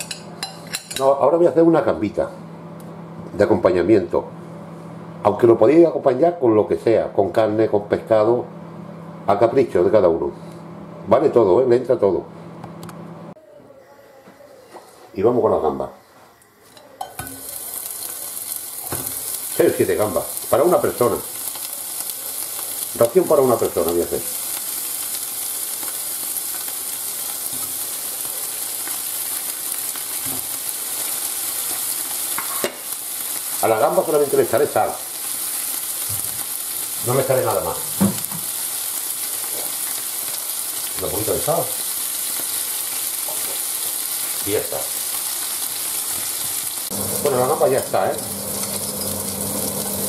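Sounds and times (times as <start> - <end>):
prawns sizzling in a frying pan: 14.8 - 50.0.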